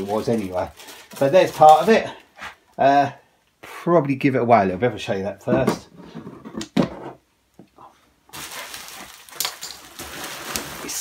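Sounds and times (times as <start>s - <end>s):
plastic wrap rustling and crinkling: 0.0s - 2.3s, 8.3s - 11.0s.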